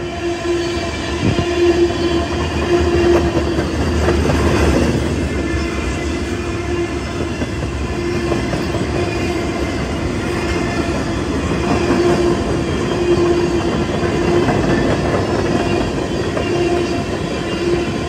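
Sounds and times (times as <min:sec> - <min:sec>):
train wheels running over rails: 0:00.8 - 0:18.0.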